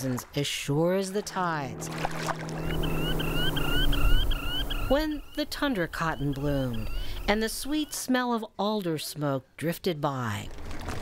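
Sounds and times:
steady low hum: 0:00.7 - 0:07.4
high short rising chirps: 0:01.6 - 0:07.3.

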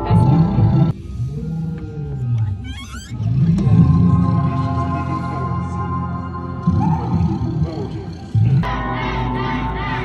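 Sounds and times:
deep growling monster sounds: 0:00.0 - 0:10.0
eerie music: 0:00.0 - 0:10.0.

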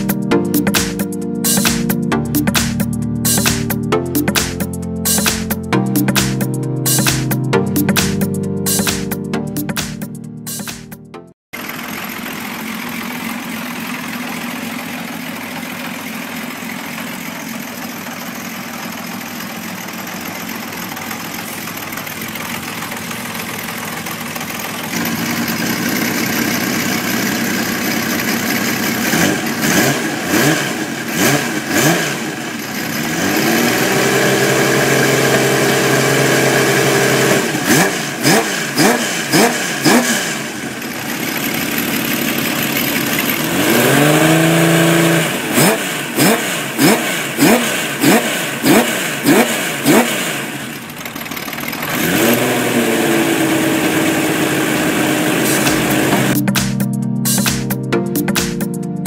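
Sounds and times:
motorcycle engine revving: 0:11.6 - 0:56.4.

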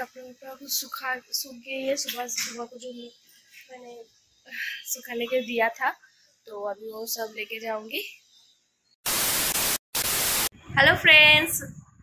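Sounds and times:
tv static hiss: 0:00.0 - 0:08.2, 0:09.0 - 0:10.5.

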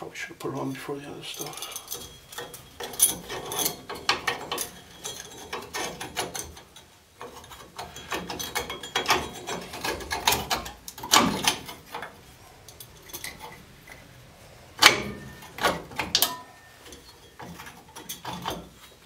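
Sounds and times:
metal clank: 0:01.3 - 0:19.0
metal brake parts clicking: 0:01.4 - 0:19.0.

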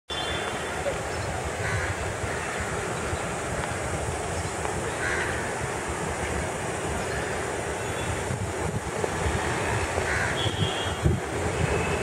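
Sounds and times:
diesel train rumbling: 0:00.1 - 0:12.0
crow cawing: 0:01.6 - 0:02.7, 0:05.0 - 0:05.5, 0:10.1 - 0:10.4.

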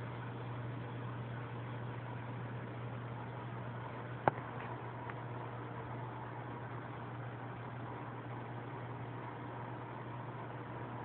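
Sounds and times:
aquarium pump humming: 0:00.0 - 0:11.0.

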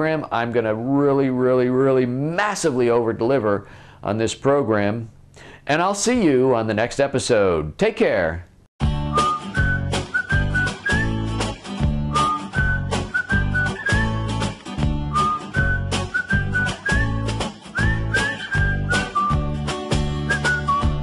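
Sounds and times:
whistled melody over a beat: 0:08.8 - 0:21.0.

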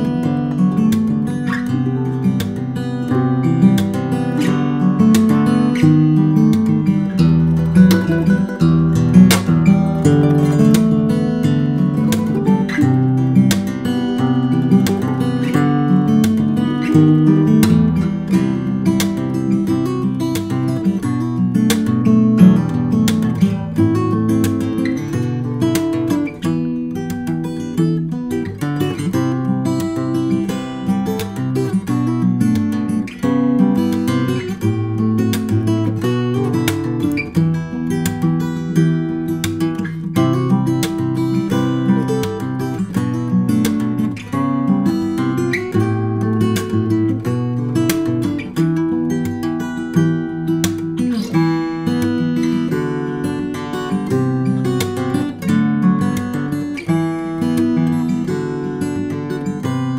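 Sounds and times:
fingerstyle acoustic guitar: 0:00.0 - 0:59.9.

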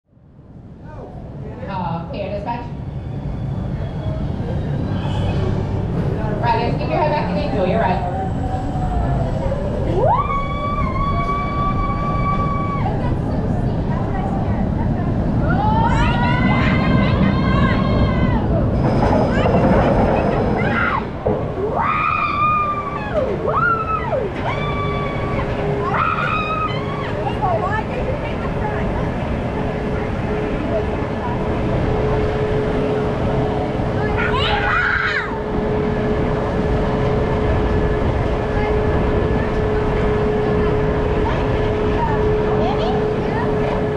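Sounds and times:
roller coaster train rumbling: 0:00.1 - 0:43.9
riders whooping: 0:07.2 - 0:13.2, 0:20.1 - 0:27.5.

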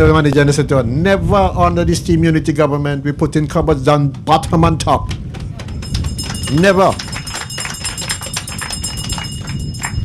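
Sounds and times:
audience clapping: 0:04.3 - 0:10.0
high metallic jingle: 0:05.7 - 0:10.0.

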